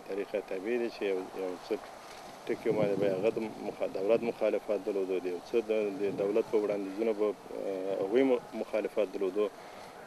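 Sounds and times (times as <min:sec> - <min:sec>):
man talking: 0:00.0 - 0:09.6.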